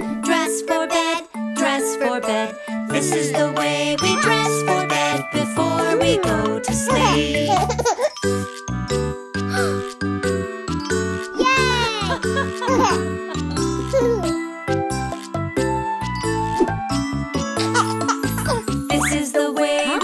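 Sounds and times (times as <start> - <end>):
tinkling lullaby music: 0.0 - 20.0.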